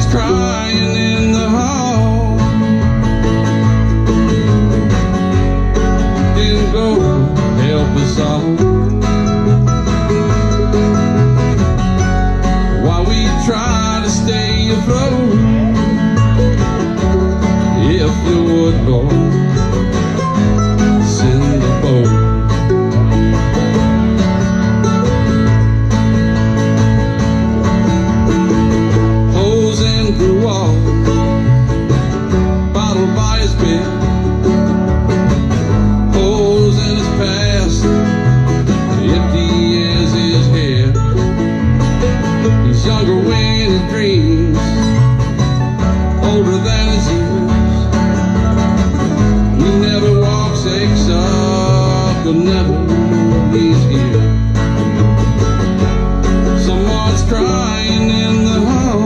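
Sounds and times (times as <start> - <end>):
mandolin lead melody: 0.0 - 59.0
plucked upright bass: 0.0 - 59.0
strummed acoustic guitar: 0.0 - 59.0.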